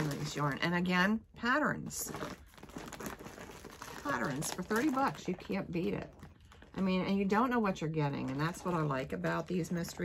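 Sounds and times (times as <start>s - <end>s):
plastic bag crinkling: 0.0s - 0.8s, 1.8s - 10.0s.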